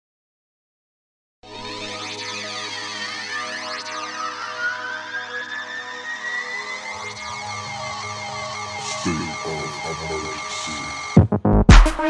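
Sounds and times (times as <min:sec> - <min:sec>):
electronic background music: 0:01.4 - 0:12.0.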